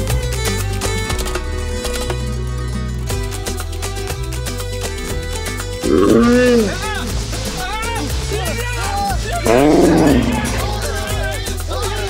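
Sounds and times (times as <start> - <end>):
loud roar: 5.8 - 7.1, 9.4 - 11.1
people yelling: 5.8 - 12.0.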